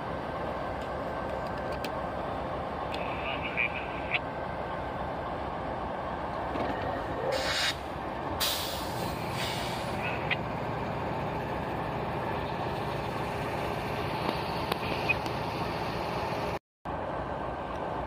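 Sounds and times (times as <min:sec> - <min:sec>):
freight train rumble: 0:00.0 - 0:18.0
air brake hiss: 0:07.3 - 0:07.8, 0:08.4 - 0:09.9.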